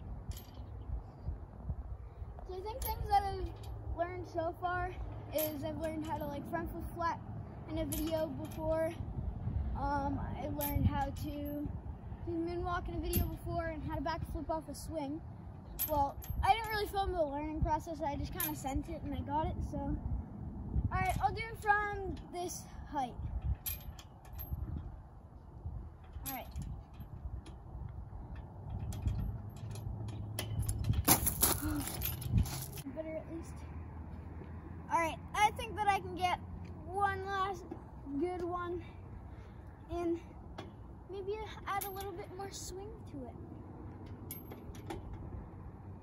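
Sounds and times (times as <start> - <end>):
wind rumble on microphone: 0.0 - 35.9
swing chains clicking: 2.6 - 3.9, 4.5 - 6.9, 7.7 - 9.0, 10.5 - 11.8, 21.1 - 32.9, 37.6 - 43.1, 43.8 - 46.0.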